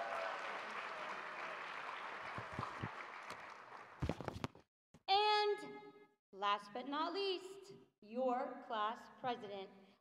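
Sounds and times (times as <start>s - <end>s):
audience applause: 0.0s - 4.2s.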